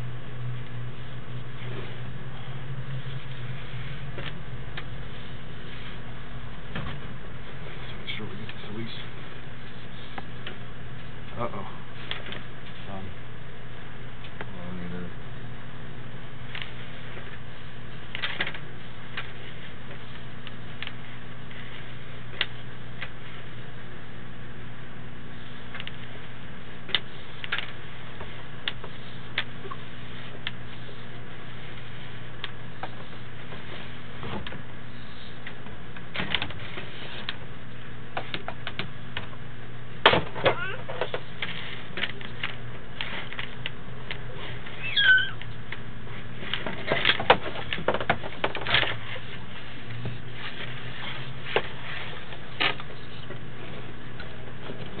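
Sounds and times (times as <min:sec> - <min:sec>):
low electrical hum: 0:00.0 - 0:55.0
brief squeak: 0:44.8 - 0:45.4.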